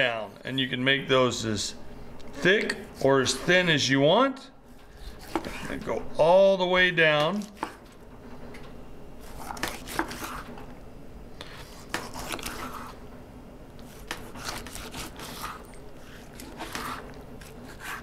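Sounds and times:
knife sawing through meat: 0:05.0 - 0:05.8, 0:09.2 - 0:10.4, 0:11.6 - 0:13.0, 0:13.9 - 0:18.0.

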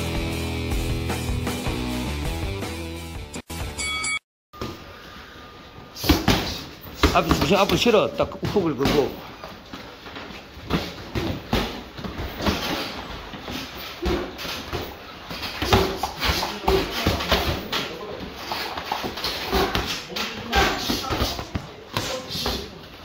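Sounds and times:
boxers' sharp breaths: 0:04.8 - 0:07.2, 0:09.1 - 0:17.7, 0:18.3 - 0:23.0.

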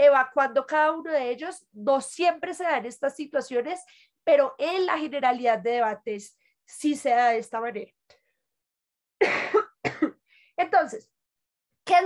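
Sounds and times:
woman coughing: 0:09.2 - 0:10.3.

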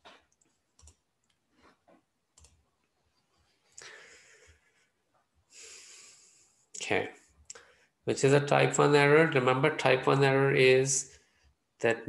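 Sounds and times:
computer mouse clicks: 0:00.2 - 0:01.4, 0:02.4 - 0:02.6.

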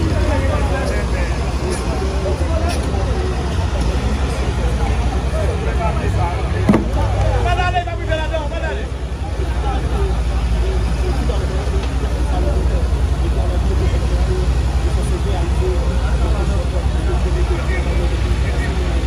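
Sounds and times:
crowd talking and calling out: 0:00.0 - 0:19.0
excavator diesel engine rumbling: 0:00.0 - 0:19.0
sharp knock: 0:06.7 - 0:07.0.

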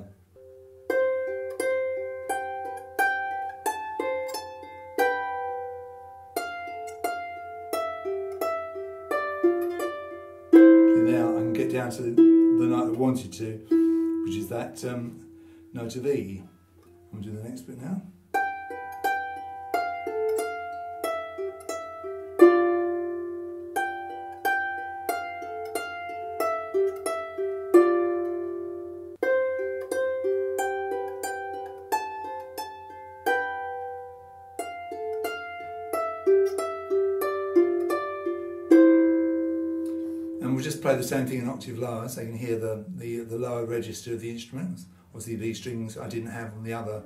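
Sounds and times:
harp plucked tune: 0:00.0 - 0:43.8.

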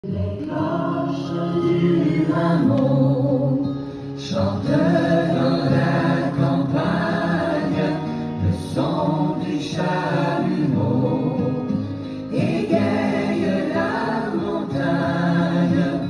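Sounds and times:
choir singing long notes: 0:00.0 - 0:16.0.

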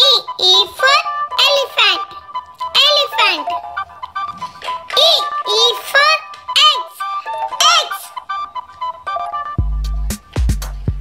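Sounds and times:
high synthetic voice singing: 0:00.0 - 0:03.7, 0:04.9 - 0:08.2
children's song music: 0:00.0 - 0:11.0.

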